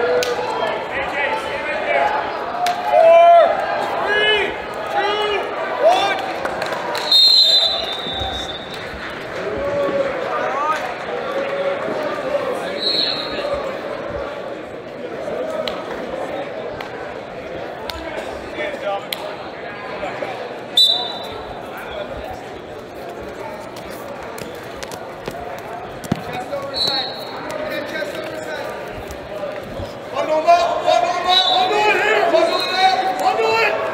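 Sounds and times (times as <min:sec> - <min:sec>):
crowd chattering in a gymnasium: 0:00.0 - 0:33.9
murmur of voices and shouts: 0:00.0 - 0:33.9
brief high whistle: 0:07.0 - 0:08.7, 0:20.8 - 0:21.3.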